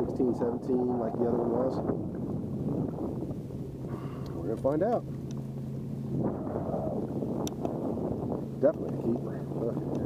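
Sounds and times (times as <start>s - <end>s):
faint steady hum: 0.0s - 10.0s
wind buffeting microphone: 0.0s - 10.0s.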